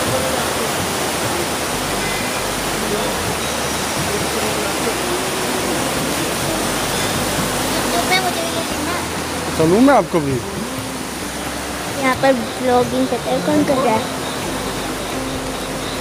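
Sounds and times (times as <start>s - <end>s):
river rushing: 0.0s - 16.0s.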